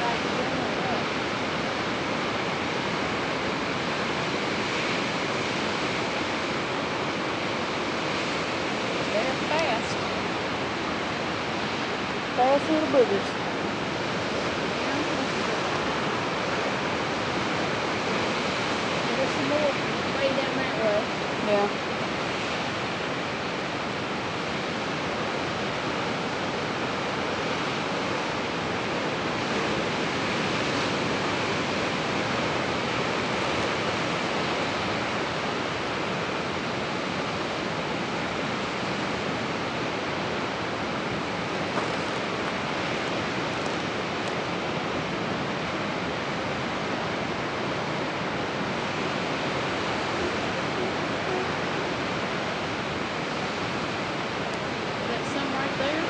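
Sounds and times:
ocean surf: 0.0s - 56.0s.

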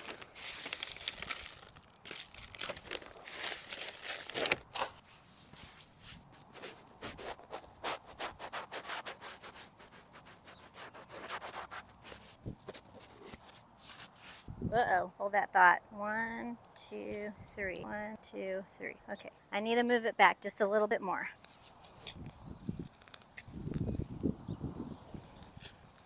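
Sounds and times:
hands scraping soil: 0.0s - 14.5s, 21.4s - 24.4s, 25.0s - 26.0s.

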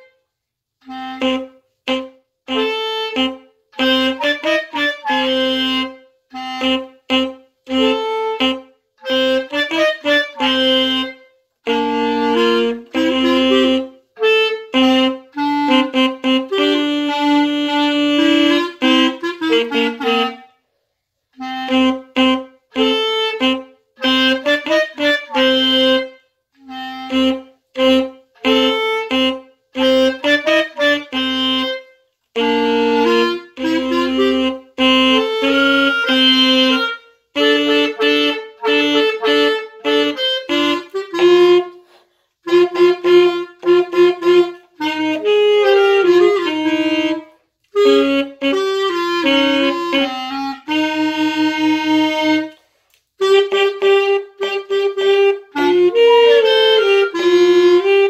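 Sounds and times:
saxophone and clarinet duet: 0.0s - 0.2s, 0.8s - 58.0s.

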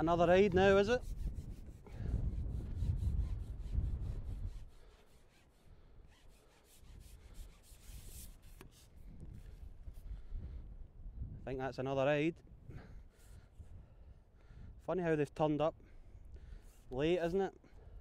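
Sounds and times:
wind buffeting microphone: 0.0s - 4.8s, 8.9s - 11.6s, 12.4s - 14.8s.

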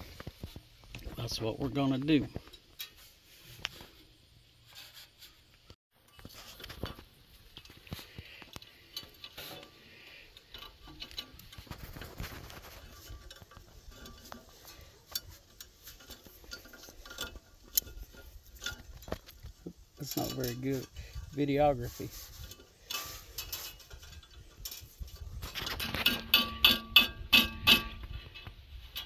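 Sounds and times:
metallic clicks and scrapes: 0.0s - 29.0s.

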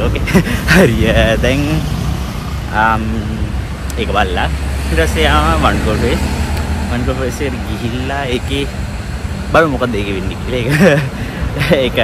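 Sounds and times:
man's voice: 0.0s - 1.9s, 2.6s - 8.7s, 9.6s - 12.0s
low rumble of road traffic: 0.0s - 12.0s.

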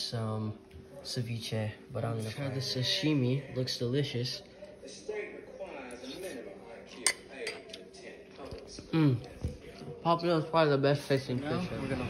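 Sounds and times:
utensils clinking on plate: 6.9s - 7.8s.

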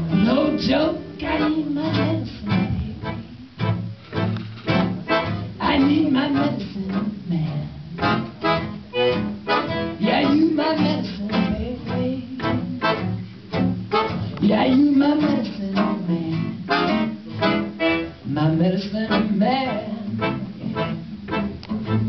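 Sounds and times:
guitar strumming: 0.0s - 22.0s
piano accordion held notes: 1.2s - 6.0s, 8.0s - 10.0s, 16.7s - 18.2s, 19.7s - 22.0s.

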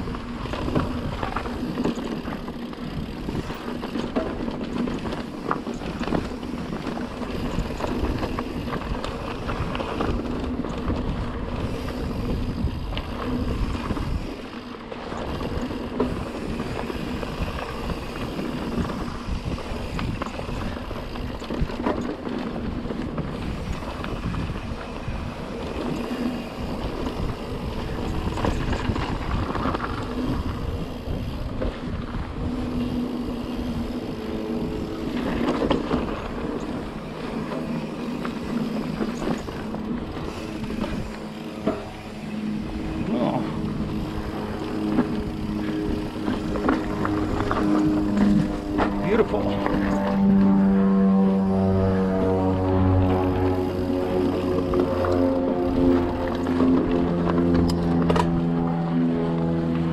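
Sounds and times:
tyres rumbling on dirt and rock: 0.0s - 50.8s
wind buffeting microphone: 0.0s - 59.9s.

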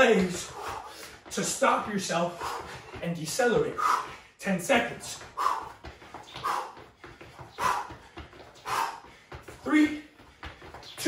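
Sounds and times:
sneaker steps on tile floor: 0.0s - 11.0s.

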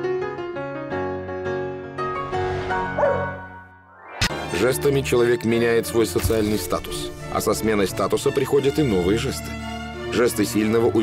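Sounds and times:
piano music: 0.0s - 9.3s
dog yip: 3.0s - 3.4s.

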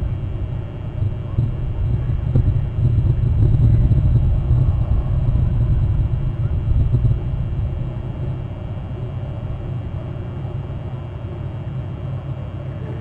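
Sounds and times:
loud low rumble: 0.0s - 11.4s.

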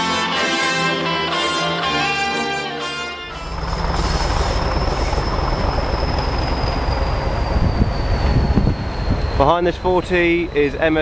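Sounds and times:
diesel locomotive engine rumble: 3.3s - 11.0s
turbocharger whistle: 3.3s - 11.0s.

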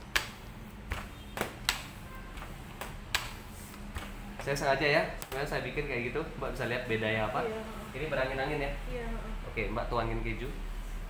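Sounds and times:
sharp clicks and knocks: 0.0s - 4.5s
rolling pin on dough: 0.0s - 5.5s.

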